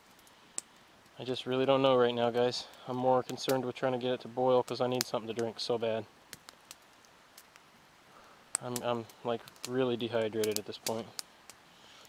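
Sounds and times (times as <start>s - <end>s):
fire pops: 0.0s - 3.8s, 4.6s - 12.0s
campfire crackling: 0.0s - 12.0s
low hiss: 0.0s - 12.0s.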